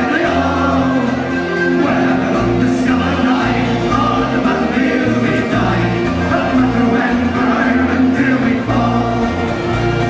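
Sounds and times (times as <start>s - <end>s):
man singing into a microphone: 0.0s - 9.4s
bass line: 0.0s - 10.0s
guitar: 0.0s - 10.0s.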